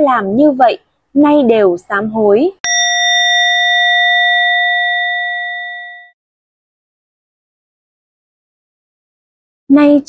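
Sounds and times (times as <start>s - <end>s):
prayer bell ringing: 2.7s - 6.2s.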